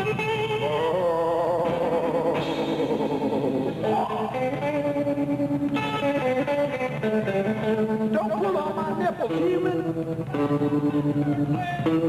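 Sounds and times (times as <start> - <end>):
electric guitar chords: 0.0 - 12.0
live band music: 0.0 - 12.0.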